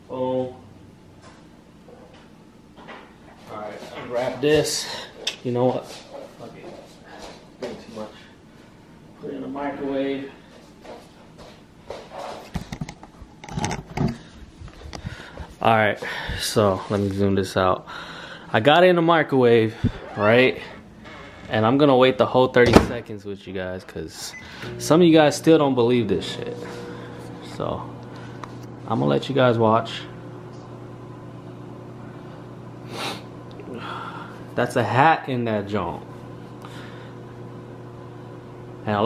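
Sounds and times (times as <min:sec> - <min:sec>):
microwave oven humming: 0:24.2 - 0:39.0.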